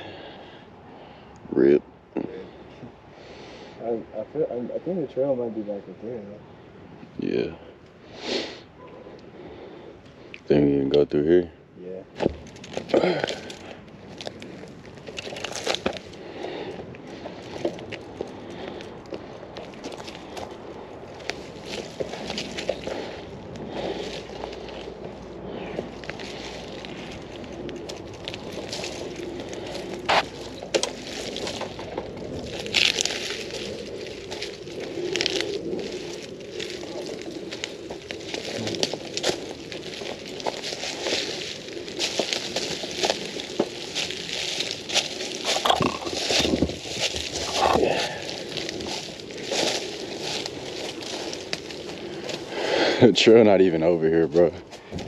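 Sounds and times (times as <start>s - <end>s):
leaves and twigs crackling: 12.1s - 55.0s
bike clicks and rattles: 12.2s - 16.2s.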